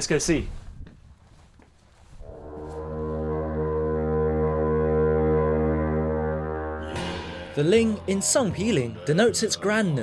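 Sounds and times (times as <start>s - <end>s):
deep horn low note: 2.2s - 10.0s.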